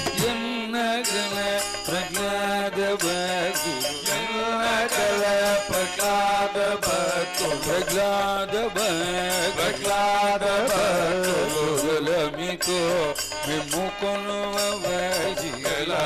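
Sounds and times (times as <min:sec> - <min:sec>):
men singing devotional song: 0:00.0 - 0:16.0.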